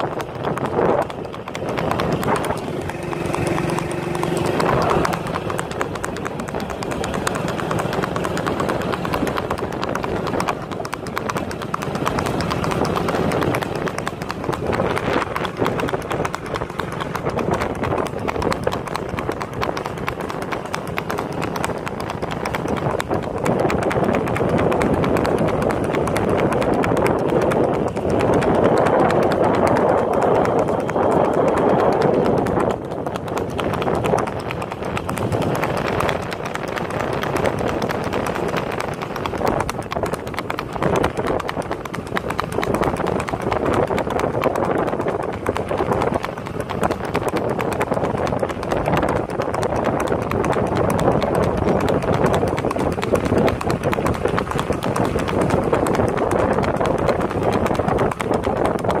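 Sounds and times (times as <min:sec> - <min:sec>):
horse hooves on paved road: 0:00.0 - 0:59.0
steady rushing noise: 0:00.0 - 0:59.0.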